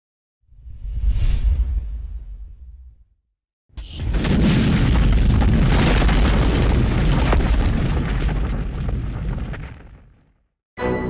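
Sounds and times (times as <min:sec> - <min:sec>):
explosion boom and rumbling blast: 0:03.8 - 0:10.4.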